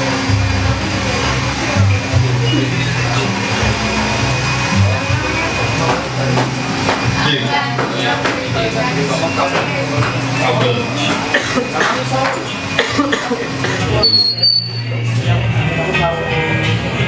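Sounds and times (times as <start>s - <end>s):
chatter of voices: 0.0s - 17.0s
music with low bass notes: 0.0s - 17.0s.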